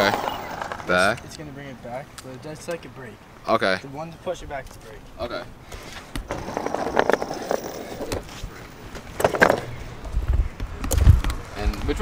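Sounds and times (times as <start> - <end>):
skateboard wheels rolling on asphalt: 0.0 - 1.7, 5.8 - 12.0.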